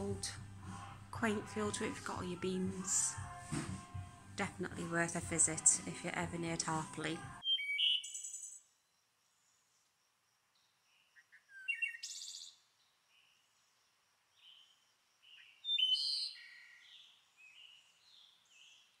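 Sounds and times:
songbirds chirping and trilling: 5.3 - 19.0.

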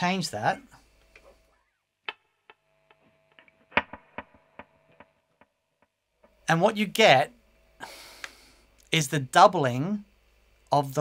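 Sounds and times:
muted guitar string clicks echoing: 3.7 - 4.7.

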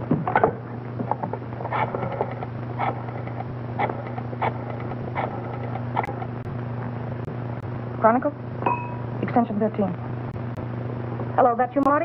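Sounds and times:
low film soundtrack hum: 0.0 - 12.0.

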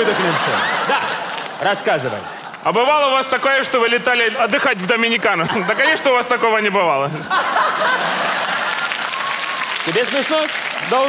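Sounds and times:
studio audience applauding: 0.0 - 5.4, 7.7 - 11.0
man's voice: 1.6 - 7.3.

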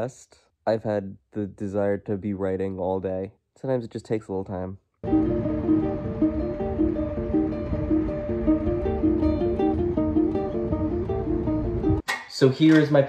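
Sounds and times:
acoustic guitars playing: 5.0 - 12.0
low background rumble: 5.0 - 12.0.

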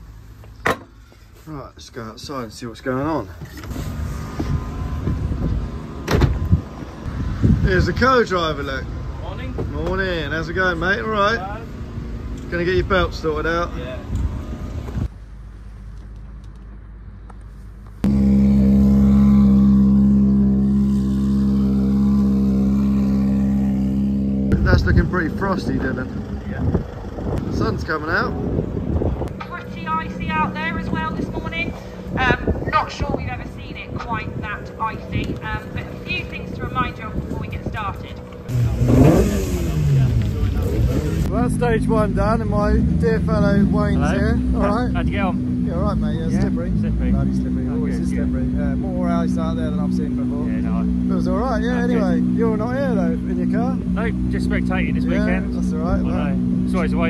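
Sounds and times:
low outdoor rumble: 0.0 - 57.0
engine idling drone: 17.8 - 57.0.

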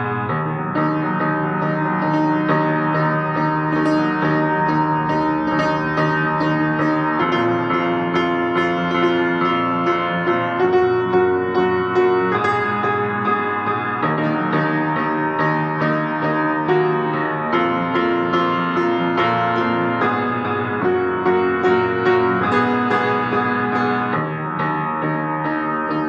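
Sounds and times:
solo piano playing: 0.0 - 26.0.

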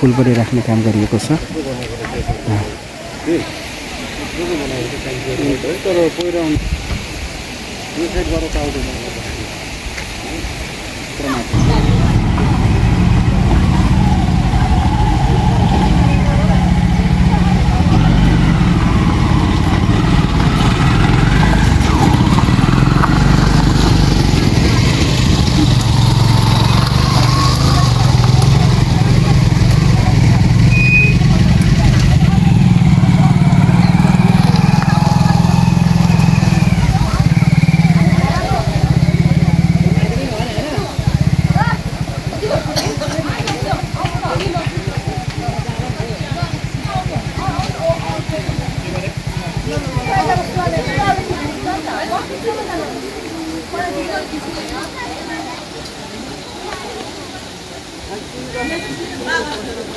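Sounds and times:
crowd chatter: 0.0 - 59.9
loud low rumble: 11.6 - 40.2.

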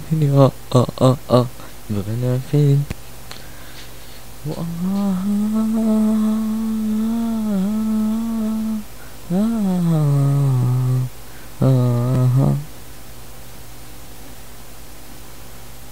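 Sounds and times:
person humming: 0.0 - 2.9, 4.4 - 12.8
steady low buzz: 0.0 - 15.9.

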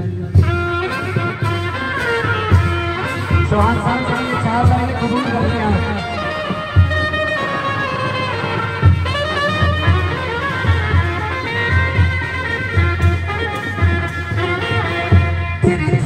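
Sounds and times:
low drum beats: 0.0 - 16.0
brass horns playing melody: 0.5 - 16.0.

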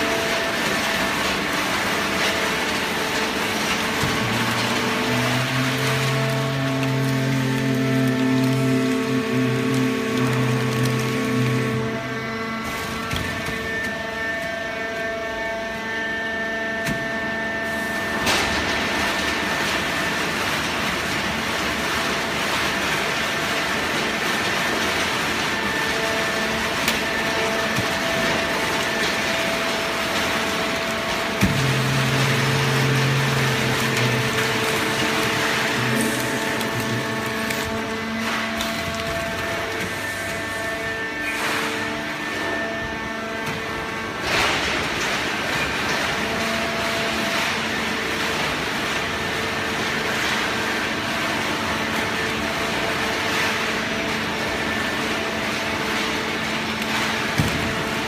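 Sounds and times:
baling press mechanical hum: 0.0 - 58.0.

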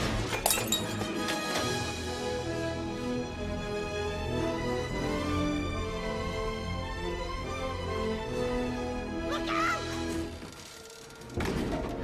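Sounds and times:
dramatic orchestral music: 0.0 - 10.6.

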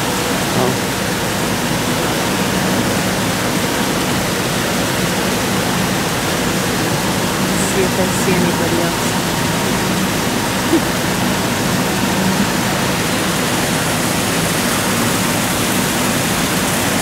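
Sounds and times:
running water rushing: 0.0 - 17.0.

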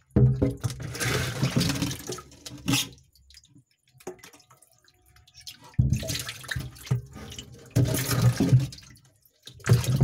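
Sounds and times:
water pouring and splashing: 0.0 - 10.0
water dripping: 1.5 - 10.0.

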